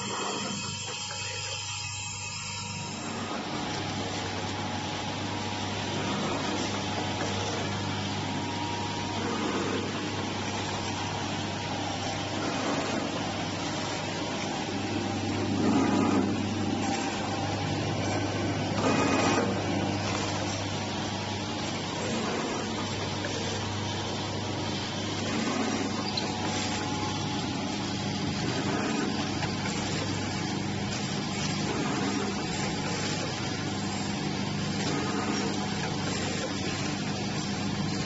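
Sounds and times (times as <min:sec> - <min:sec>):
packing machine running: 0:00.0 - 0:38.0.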